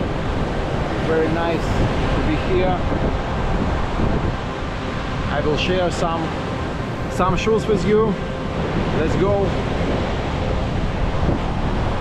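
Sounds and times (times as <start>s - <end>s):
surf breaking on rocks: 0.0s - 4.4s
wind buffeting microphone: 0.0s - 12.0s.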